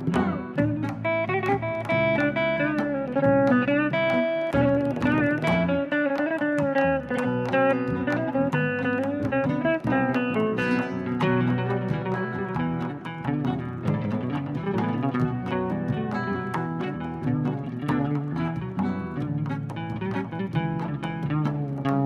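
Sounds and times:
sustained bass notes: 0:00.0 - 0:05.9
fretless electric guitar melody: 0:00.0 - 0:22.0.

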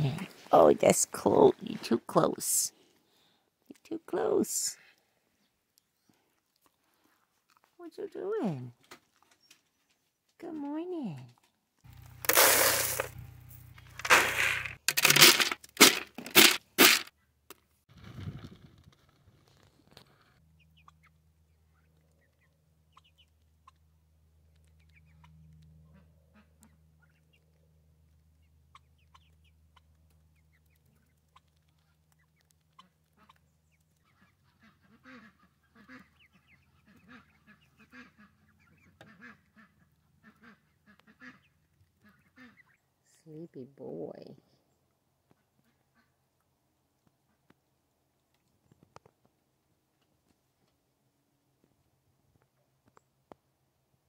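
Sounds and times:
feed pellets rattling into tray: 0:12.0 - 0:17.1
ducklings quacking softly: 0:20.6 - 0:43.4, 0:44.8 - 0:46.5, 0:47.1 - 0:47.8.

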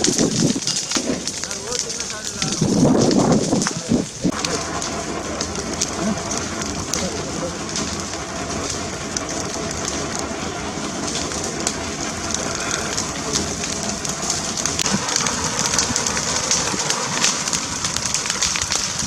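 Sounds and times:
fire crackling and popping: 0:00.0 - 0:19.0
wildfire rushing: 0:00.0 - 0:19.0.

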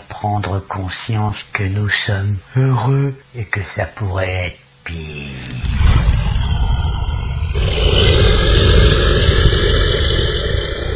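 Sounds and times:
harsh roar: 0:05.4 - 0:10.9
deep rumble: 0:05.5 - 0:10.9.

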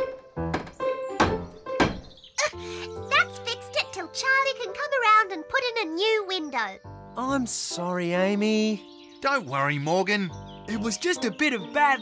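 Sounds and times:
light background music: 0:00.0 - 0:12.0
hammer nailing wood: 0:00.5 - 0:02.1.

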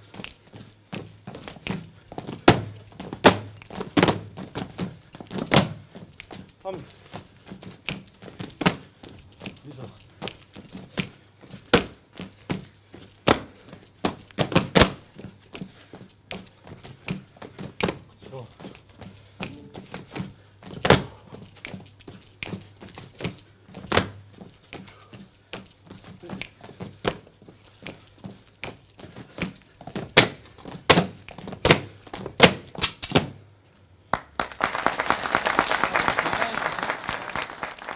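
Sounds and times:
dancers' percussive foot strikes: 0:01.0 - 0:06.4, 0:13.3 - 0:15.1, 0:19.4 - 0:21.8, 0:23.8 - 0:24.3, 0:29.4 - 0:33.4
dancers slapping strikes: 0:02.4 - 0:04.4
audience applause: 0:34.1 - 0:37.9.

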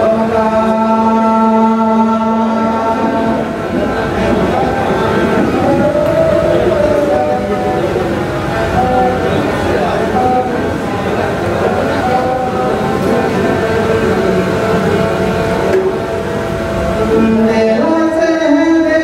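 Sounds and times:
low background noise: 0:00.0 - 0:19.0.

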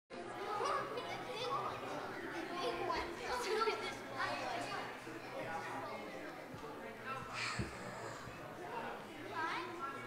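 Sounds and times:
indistinct chatter of crowd: 0:00.1 - 0:10.0
children's voices: 0:00.2 - 0:05.8, 0:09.2 - 0:10.0.

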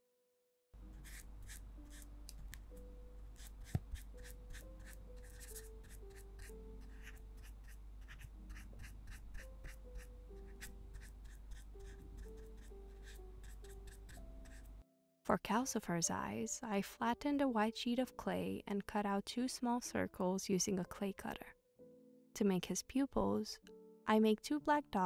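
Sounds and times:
soft background music: 0:00.8 - 0:25.0
brush taps and scratches: 0:03.4 - 0:04.6.

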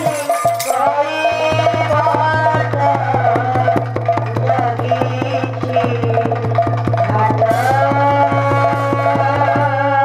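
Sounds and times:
barrel drum fast beat: 0:00.0 - 0:10.0.

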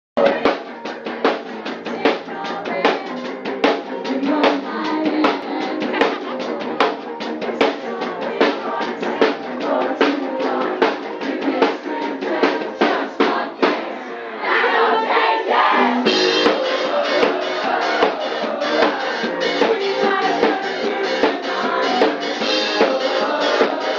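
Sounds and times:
drum kit beat: 0:00.2 - 0:14.1, 0:14.9 - 0:23.9
rock band playing: 0:00.2 - 0:14.1, 0:14.8 - 0:23.9
electric guitar: 0:15.8 - 0:23.9.

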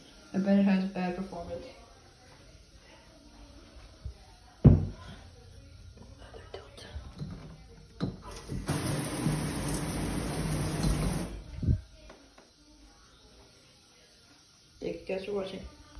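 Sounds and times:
knock: 0:04.7 - 0:05.0
shower water spraying: 0:08.2 - 0:12.1.

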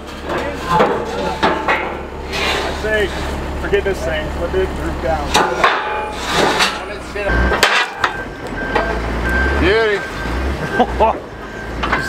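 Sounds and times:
heavy metal knocks and clanks: 0:00.0 - 0:04.1, 0:05.0 - 0:09.2
low steady rumble: 0:00.0 - 0:10.2.

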